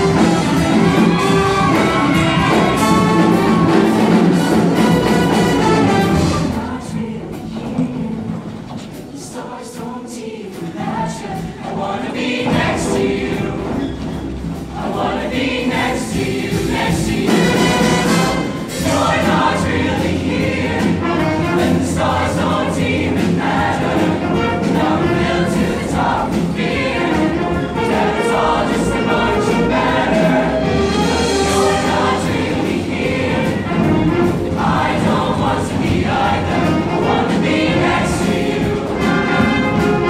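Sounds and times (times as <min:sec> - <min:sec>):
live band playing: 0:00.0 - 0:06.8, 0:15.7 - 0:40.0
choir singing: 0:00.0 - 0:40.0.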